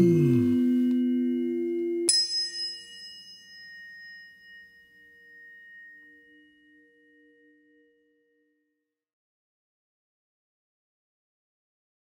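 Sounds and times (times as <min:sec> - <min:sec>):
held tones: 0:00.0 - 0:08.5
metal bell strike ringing: 0:00.0 - 0:08.6.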